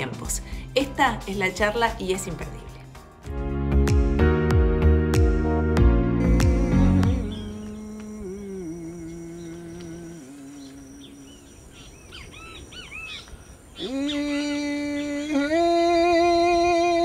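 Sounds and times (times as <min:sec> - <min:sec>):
low voice humming: 0:06.2 - 0:11.7, 0:13.8 - 0:17.0
bird chirps: 0:07.1 - 0:07.9, 0:08.8 - 0:14.7.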